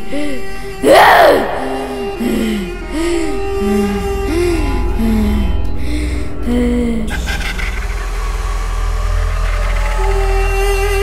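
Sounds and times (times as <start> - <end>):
deep steady drone: 0.0 - 11.0
eerie horror film score: 0.0 - 11.0.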